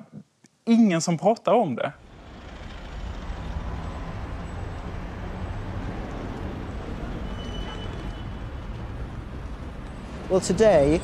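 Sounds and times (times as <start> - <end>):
street traffic rumble: 2.0 - 11.0.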